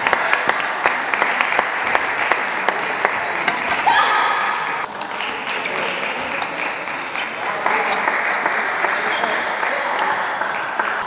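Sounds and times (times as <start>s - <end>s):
spectators applauding: 0.0s - 11.0s.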